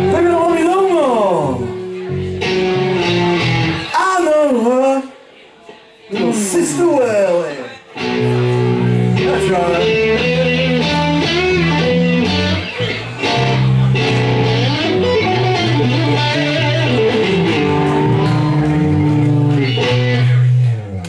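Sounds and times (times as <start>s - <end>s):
electric guitars playing slow blues: 0.0s - 4.0s, 7.9s - 21.0s.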